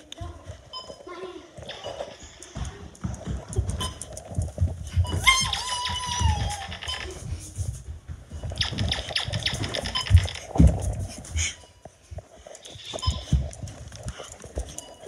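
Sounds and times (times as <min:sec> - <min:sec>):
running footsteps thudding: 0:02.1 - 0:15.0.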